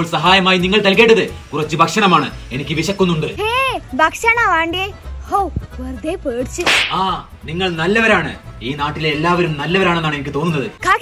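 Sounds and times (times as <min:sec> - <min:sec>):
whoosh effect: 0:06.6 - 0:07.2.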